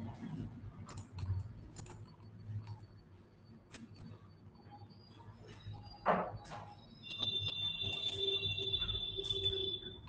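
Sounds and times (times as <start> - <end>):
high-pitched tone: 7.0 - 10.0.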